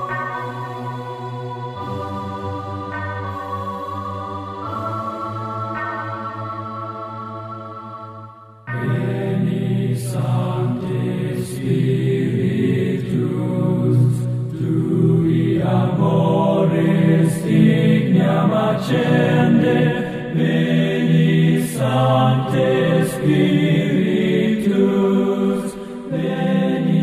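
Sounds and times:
organ-like chord: 0:00.0 - 0:13.5
chanted choral singing: 0:00.0 - 0:27.0.

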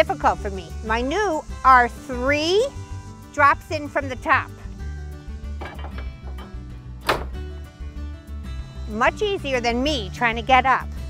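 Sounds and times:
background music: 0:00.0 - 0:11.0
metal bar clanking into socket: 0:05.6 - 0:07.4.

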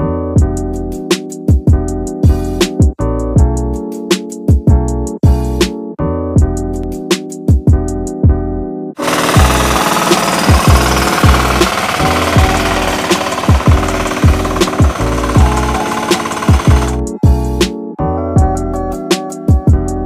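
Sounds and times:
background music with steady beat: 0:00.0 - 0:08.5, 0:09.2 - 0:20.0
rapid clatter of tractor engine: 0:09.0 - 0:17.0.

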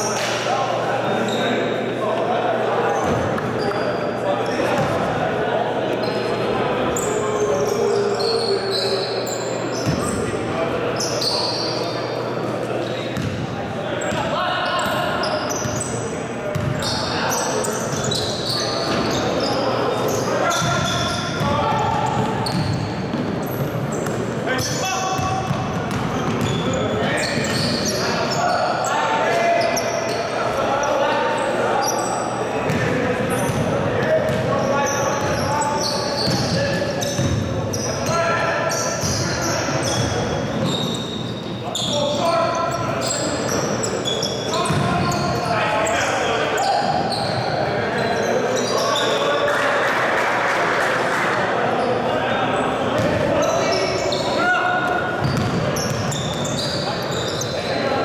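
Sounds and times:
sneaker squeaks: 0:00.0 - 0:01.8, 0:02.8 - 0:05.1, 0:05.8 - 0:49.5, 0:51.8 - 0:58.0.

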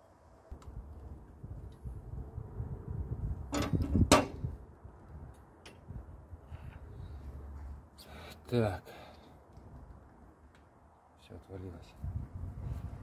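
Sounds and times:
metallic scraping clatter: 0:03.5 - 0:04.4.

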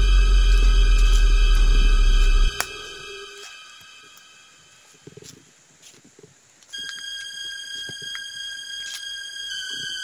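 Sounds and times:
high-pitched whine: 0:00.0 - 0:05.1.

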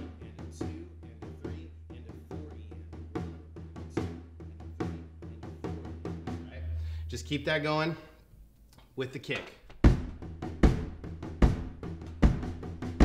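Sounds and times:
bass drum beats: 0:00.0 - 0:07.6, 0:09.7 - 0:13.0
tom drum groove: 0:00.0 - 0:07.8, 0:09.3 - 0:13.0.

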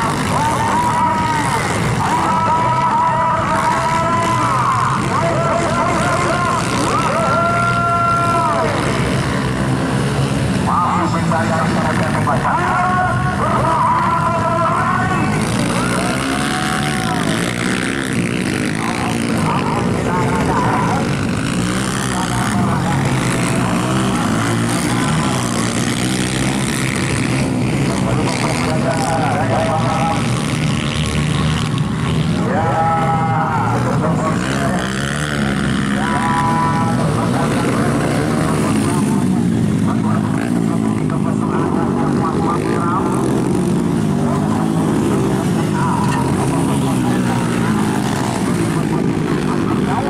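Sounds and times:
dirt bike engines revving: 0:00.0 - 0:50.0.

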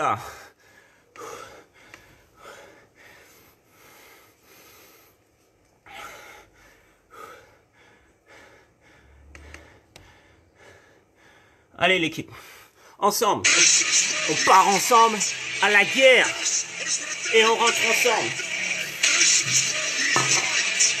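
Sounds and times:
man breathing heavily: 0:00.0 - 0:13.0.

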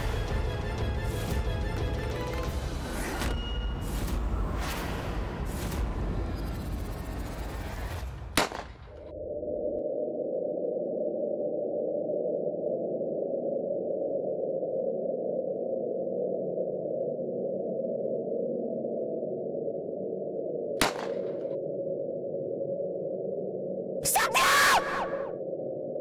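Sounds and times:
pistol shot: 0:08.4 - 0:08.9, 0:20.8 - 0:21.4.

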